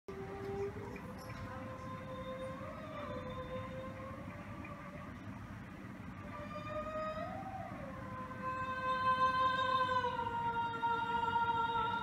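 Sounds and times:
solo voice singing a cappella: 0:08.4 - 0:12.0.

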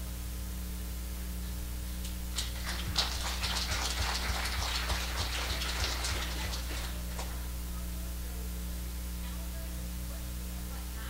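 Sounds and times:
people clapping: 0:02.3 - 0:07.4.

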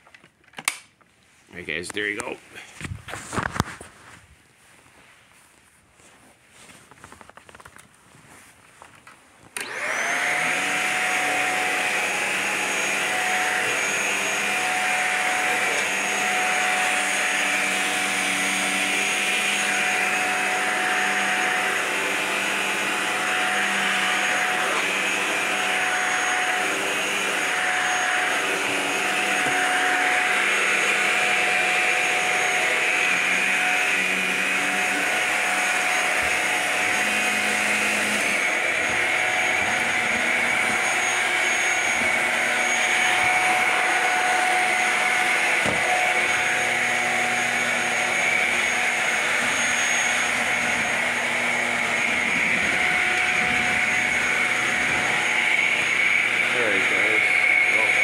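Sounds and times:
vacuum cleaner motor whine: 0:09.5 - 0:58.0.

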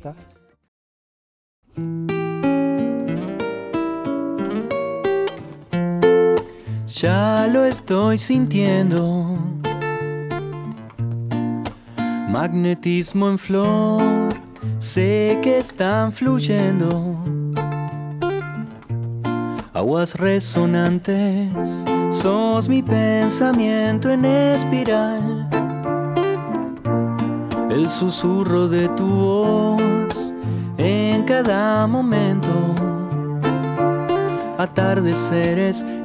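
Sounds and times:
guitar picked notes: 0:01.7 - 0:36.0.

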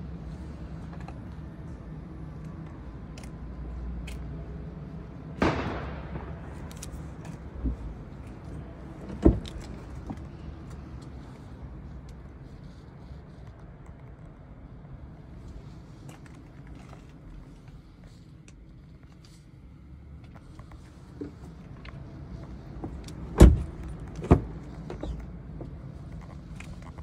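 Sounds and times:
car door latch clunk: 0:09.0 - 0:09.8, 0:23.4 - 0:24.5.

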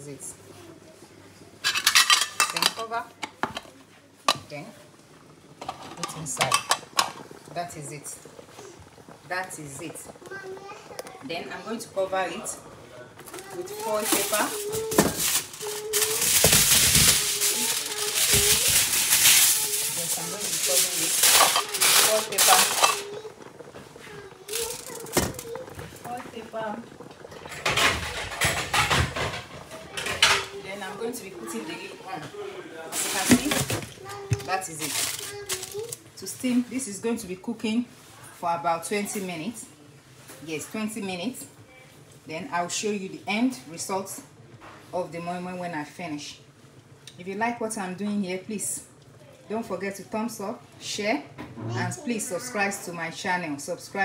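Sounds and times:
aluminium foil crinkling: 0:13.2 - 0:26.2, 0:33.0 - 0:36.1.

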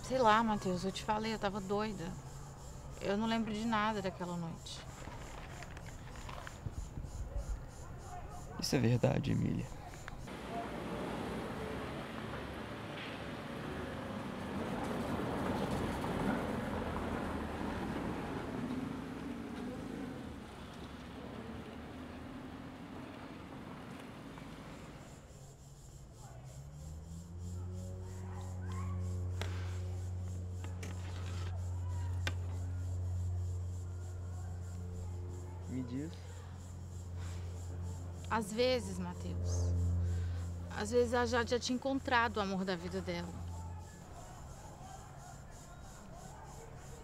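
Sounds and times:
road traffic rumble: 0:00.0 - 0:47.0
low hum: 0:27.0 - 0:43.7.

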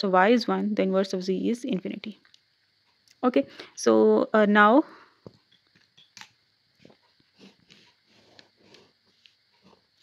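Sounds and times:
marker drawing on paper: 0:06.8 - 0:10.0.

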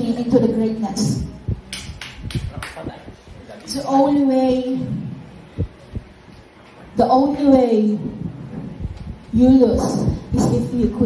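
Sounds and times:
low thumps on a microphone: 0:04.3 - 0:06.2, 0:07.1 - 0:11.0.

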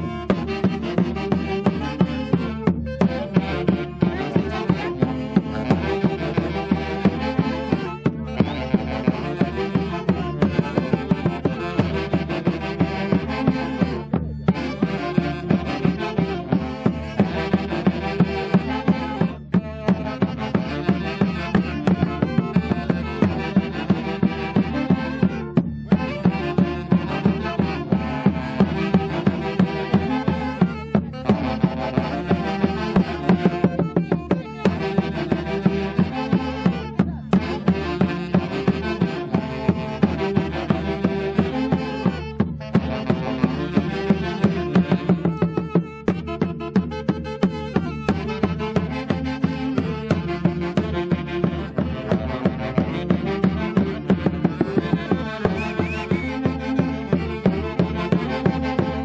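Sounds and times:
bass drum beat: 0:00.0 - 0:59.0
saxophone band playing: 0:00.0 - 0:59.0.

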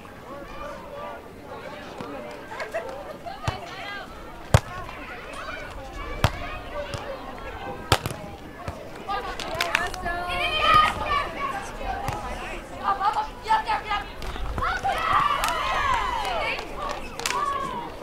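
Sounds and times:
voices of players and onlookers: 0:00.0 - 0:18.0
hands smacking volleyball: 0:04.5 - 0:05.0, 0:05.6 - 0:07.1, 0:07.9 - 0:10.0.

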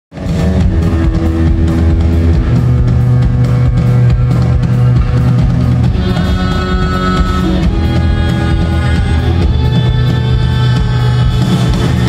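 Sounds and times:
bass guitar: 0:00.1 - 0:12.0
guitar: 0:00.1 - 0:12.0
steady drum beat: 0:00.1 - 0:12.0.

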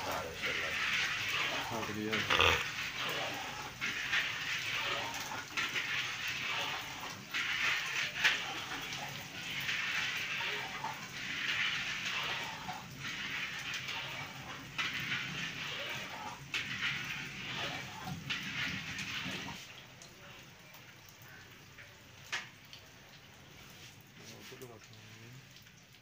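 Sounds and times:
oil bubbling and sizzling: 0:00.0 - 0:26.0.

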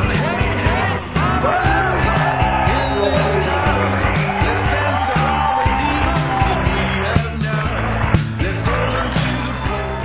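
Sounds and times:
drum kit beat: 0:00.0 - 0:08.8
live rock band playing: 0:00.0 - 0:09.8.

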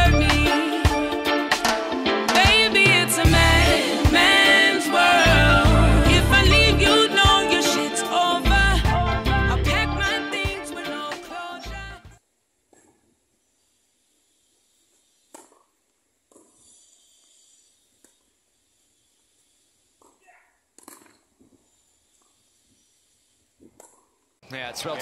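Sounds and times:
background music: 0:00.0 - 0:12.2
tennis racket hitting ball: 0:15.3 - 0:15.6.

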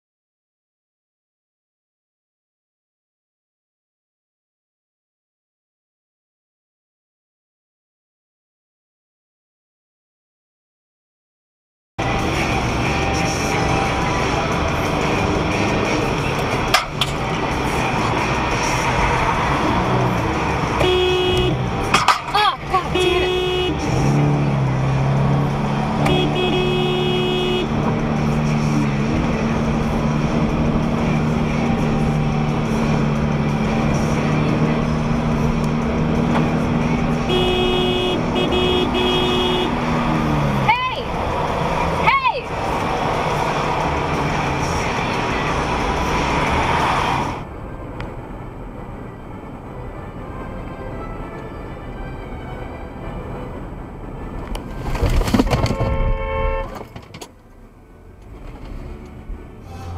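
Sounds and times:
car road and tyre noise: 0:12.0 - 0:59.9
car horn honks: 0:20.7 - 0:24.1, 0:26.0 - 0:27.8, 0:37.2 - 0:39.9, 0:55.5 - 0:56.9.

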